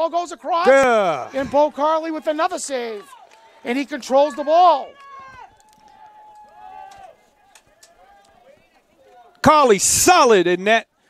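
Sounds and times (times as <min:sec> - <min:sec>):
long held shout: 0:00.6 - 0:08.4.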